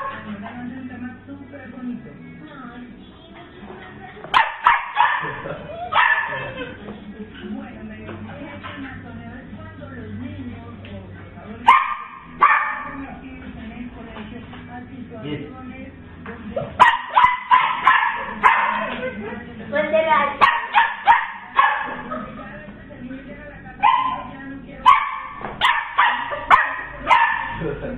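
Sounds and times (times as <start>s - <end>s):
puppy yapping: 4.3s - 6.8s, 11.7s - 13.0s, 16.8s - 19.2s, 20.3s - 22.1s, 23.8s - 27.6s.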